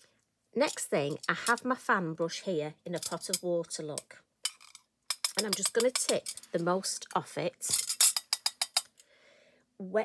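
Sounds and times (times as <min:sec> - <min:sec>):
brush clinking on metal pot: 0:04.5 - 0:06.7.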